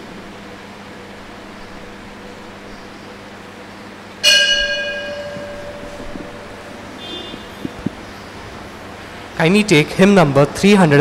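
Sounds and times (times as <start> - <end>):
bell ringing: 4.2 - 7.1.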